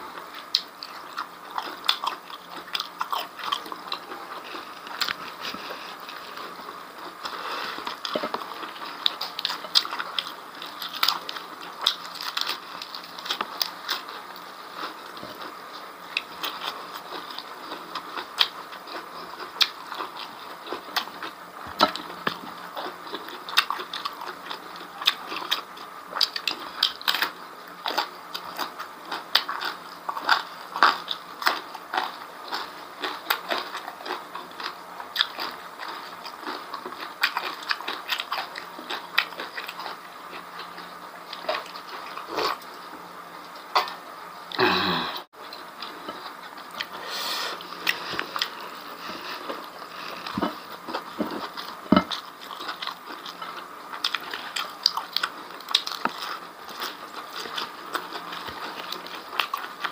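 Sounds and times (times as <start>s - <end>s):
person chewing crunchy food: 0.0s - 59.9s.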